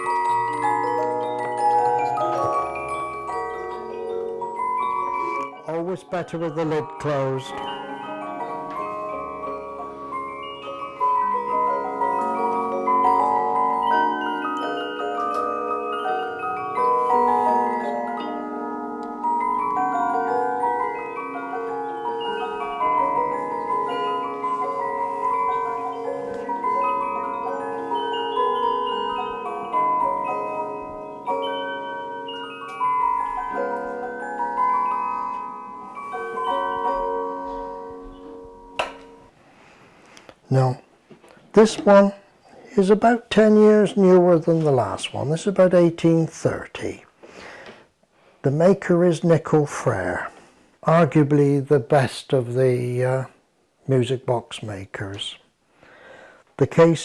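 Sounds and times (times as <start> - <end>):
music box playing a tune: 0.0 - 39.4.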